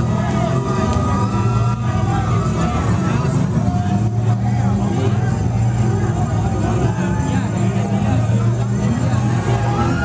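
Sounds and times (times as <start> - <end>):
crowd shouting: 0.0 - 10.0
heavy bass from speakers: 0.0 - 10.0.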